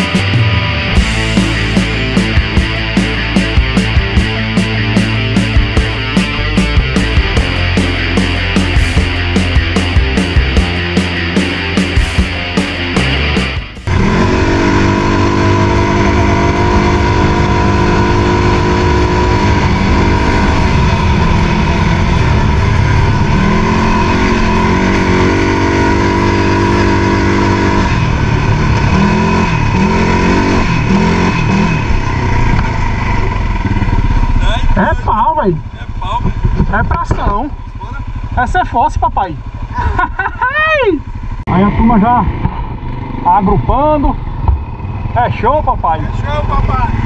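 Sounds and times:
atv engine running under throttle: 0.0s - 47.0s.

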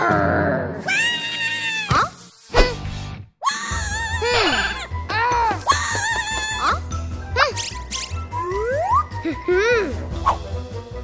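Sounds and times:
cartoon character vocal cries: 3.4s - 6.8s
cartoon music with bass beat: 3.9s - 11.0s.

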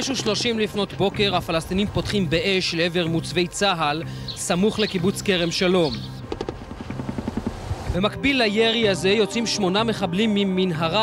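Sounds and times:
helicopter rotor beating: 5.8s - 8.0s.

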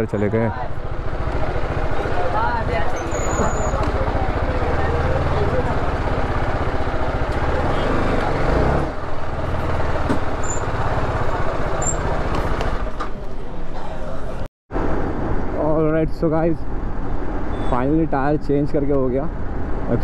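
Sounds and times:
people chattering: 0.0s - 10.1s, 11.0s - 14.5s
motorcycle engine running: 3.7s - 12.9s.

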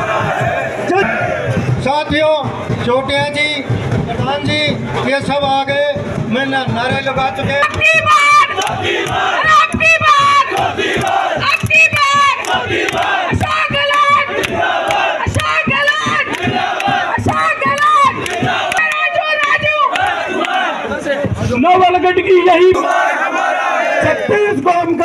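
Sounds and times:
crowd shouting slogans: 0.0s - 1.8s, 7.5s - 24.6s.

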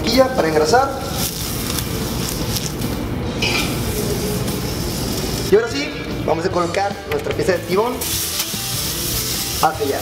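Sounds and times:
butter and oil sizzling in skillet: 7.6s - 10.0s.

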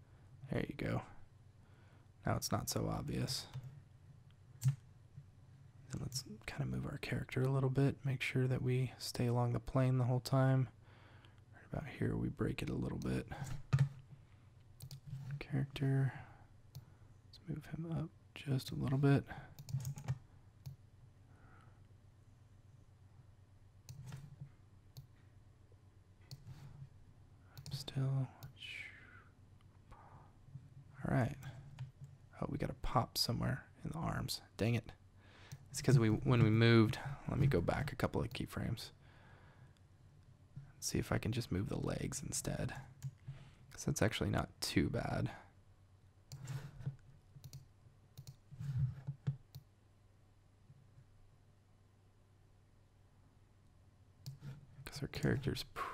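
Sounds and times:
computer mouse clicks: 14.8s - 15.3s, 19.6s - 20.8s, 23.9s - 24.4s, 26.3s - 26.6s, 46.3s - 48.4s, 54.2s - 54.5s.

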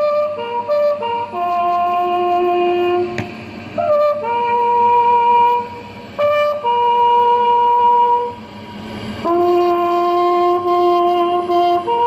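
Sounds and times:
bugle long held note: 0.0s - 3.2s, 3.8s - 8.4s, 9.2s - 12.0s.

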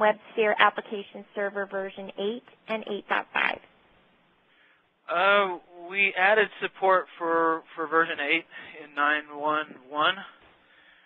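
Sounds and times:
person's vocal sounds on a phone line: 5.1s - 10.3s.

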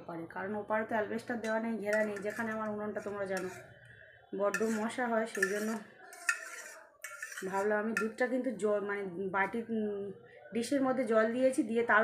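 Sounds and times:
woman's voice: 0.0s - 3.6s, 4.4s - 5.8s, 7.4s - 12.0s
spoon clinking against bowl: 1.4s - 3.6s, 4.5s - 8.2s.

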